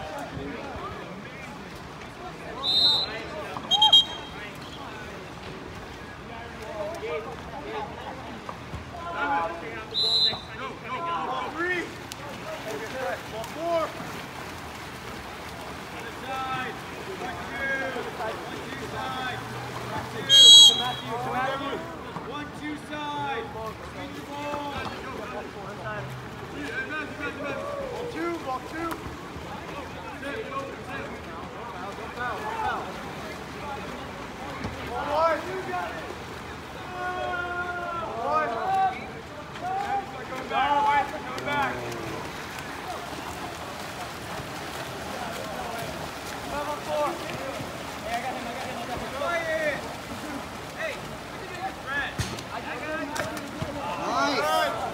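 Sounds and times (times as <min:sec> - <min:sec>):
swimmers splashing: 0:00.0 - 0:54.9
referee's whistle blast: 0:02.6 - 0:04.4, 0:09.9 - 0:10.6, 0:20.3 - 0:21.1
people shouting and calling: 0:02.6 - 0:04.5, 0:36.8 - 0:54.9.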